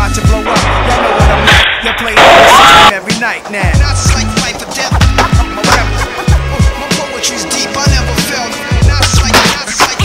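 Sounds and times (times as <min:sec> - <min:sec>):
hip hop beat: 0:00.0 - 0:10.0.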